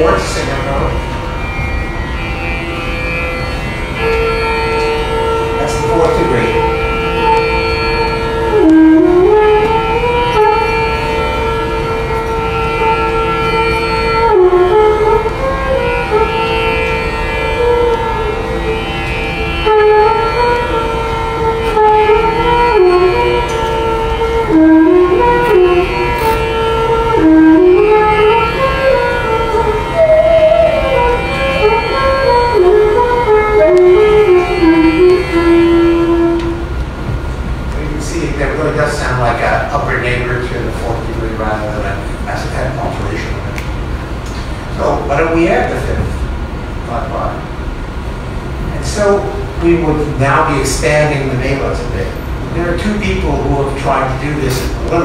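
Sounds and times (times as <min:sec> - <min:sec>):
sliding melody over drone: 0:00.0 - 0:50.6.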